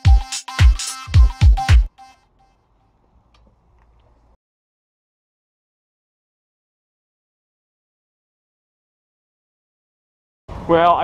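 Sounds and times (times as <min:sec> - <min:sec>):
background music: 0:00.0 - 0:02.3.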